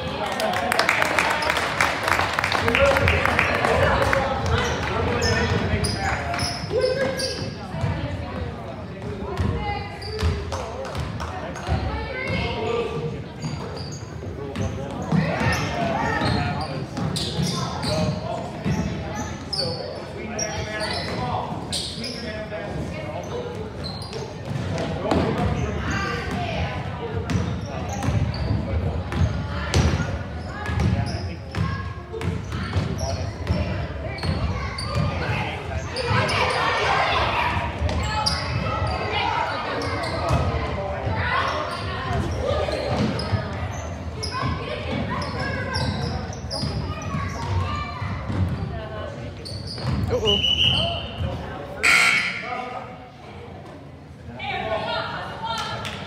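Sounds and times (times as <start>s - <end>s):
voices echoing in gym: 0.0s - 56.0s.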